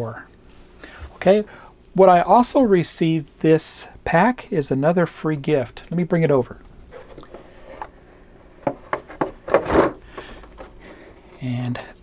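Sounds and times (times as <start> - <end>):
plastic scraping on paper: 8.8 - 10.8.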